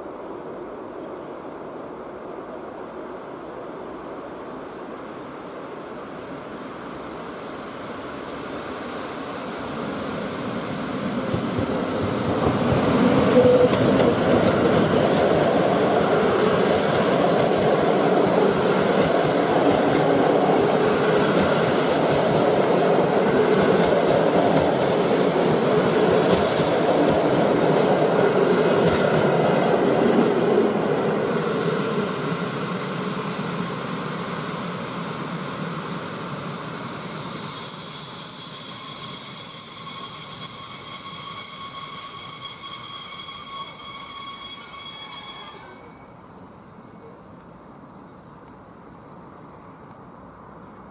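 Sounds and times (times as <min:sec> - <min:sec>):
train wheels rumbling on rail: 0:02.8 - 0:45.9
high wheel squeal: 0:12.5 - 0:31.0, 0:35.8 - 0:46.5.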